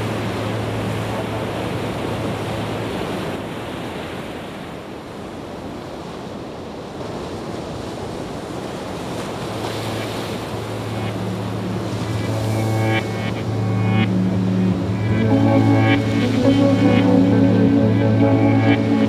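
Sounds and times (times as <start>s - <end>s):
surf-like washing noise: 0.0s - 19.0s
musical tones: 9.9s - 19.0s
steady low drone: 10.4s - 19.0s.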